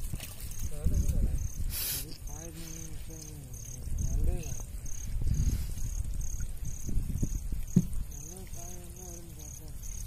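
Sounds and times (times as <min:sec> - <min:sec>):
wet fishing net hauled into boat: 0:00.0 - 0:00.8
insects chirping: 0:00.0 - 0:10.0.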